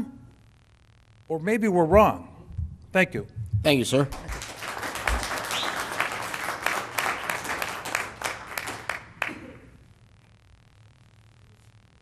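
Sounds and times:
audience applause: 0:04.1 - 0:09.6.

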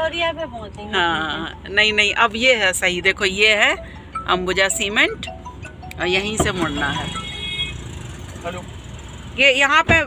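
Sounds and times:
car engine rumble and road noise: 0:00.0 - 0:10.0.

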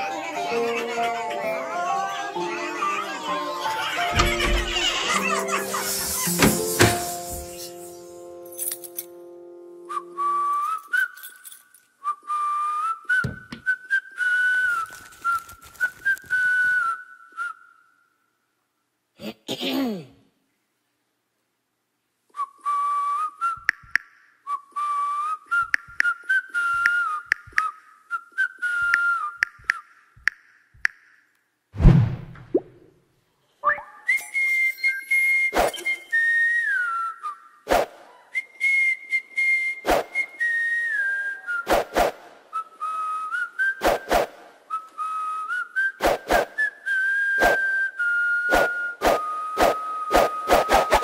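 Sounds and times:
whistled tune: 0:09.8 - 0:18.2, 0:22.4 - 0:30.0, 0:33.6 - 0:51.0
deep boom: 0:31.8 - 0:32.6.

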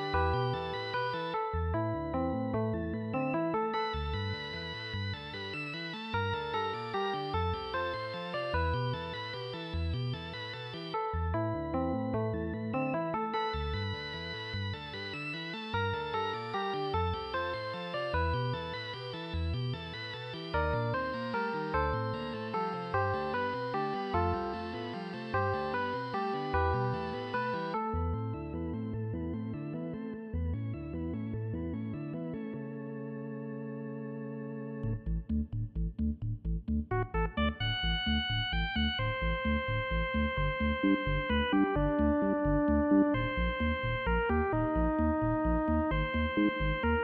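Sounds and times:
electric organ melody: 0:00.0 - 0:47.0
pulsing bass line: 0:34.8 - 0:47.0.

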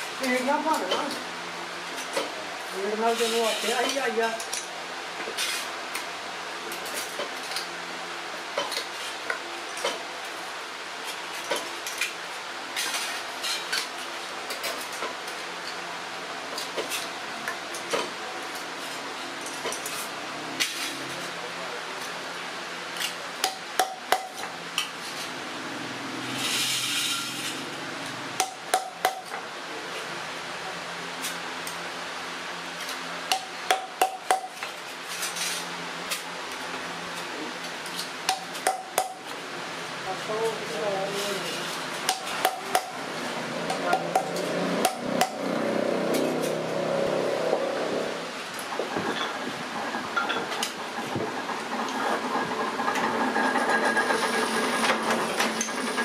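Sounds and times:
steady background noise: 0:00.0 - 0:56.0
scraping rustle: 0:02.6 - 0:04.4
hammer strikes on metal: 0:23.4 - 0:24.5, 0:28.4 - 0:29.4, 0:33.3 - 0:34.6, 0:38.3 - 0:39.2, 0:42.1 - 0:43.0, 0:43.7 - 0:45.4.

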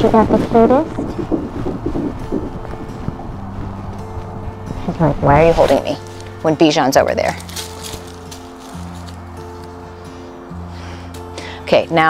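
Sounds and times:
steady low hum: 0:00.0 - 0:06.6
wind buffeting microphone: 0:00.0 - 0:09.5.

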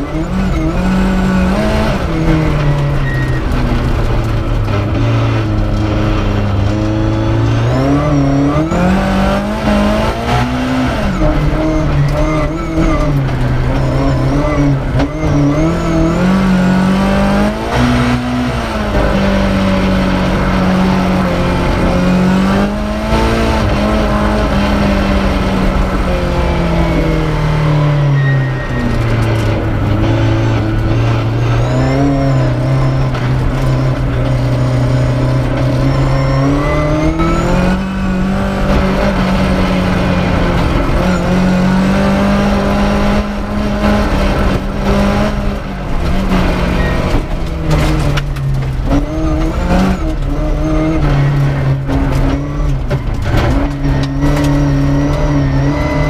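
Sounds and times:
rally car engine revving: 0:00.0 - 0:56.0.

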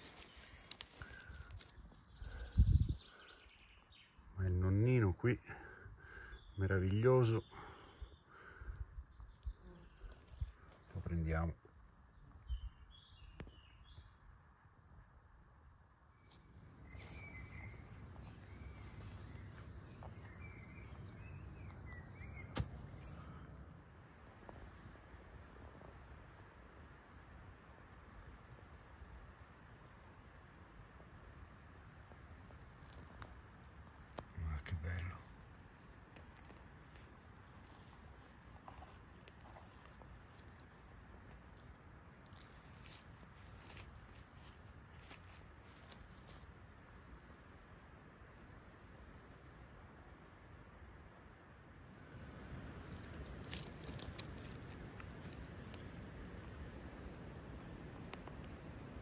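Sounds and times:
rustling of forest litter: 0:00.0 - 0:04.5, 0:05.6 - 0:14.0, 0:16.1 - 0:26.6, 0:31.6 - 0:50.7, 0:52.2 - 0:59.0.

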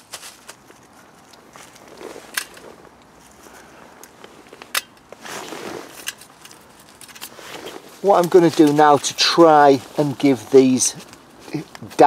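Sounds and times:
twigs clicking in a metal stove: 0:00.0 - 0:09.2, 0:10.9 - 0:12.0.

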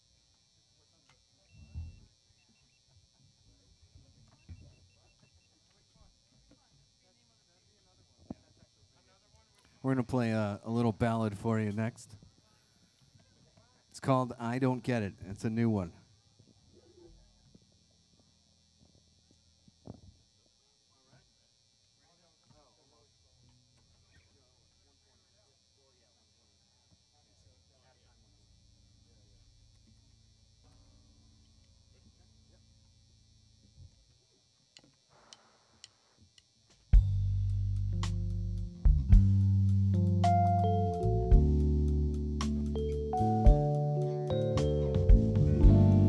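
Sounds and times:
low hum: 0:37.0 - 0:46.0
sustained low bass notes: 0:37.0 - 0:46.0
higher keyboard notes: 0:37.5 - 0:46.0.

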